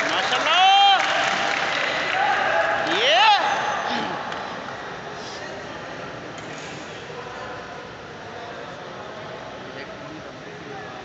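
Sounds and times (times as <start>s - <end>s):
spectators clapping: 0.0s - 3.4s.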